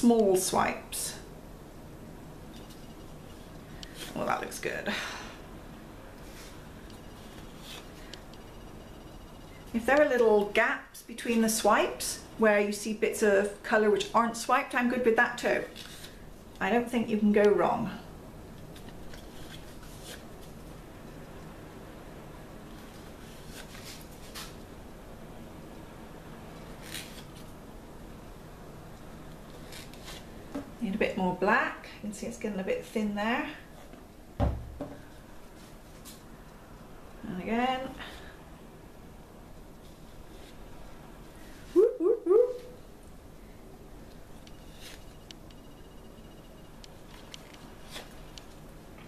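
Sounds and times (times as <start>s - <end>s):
low background hum: 0.0s - 49.0s.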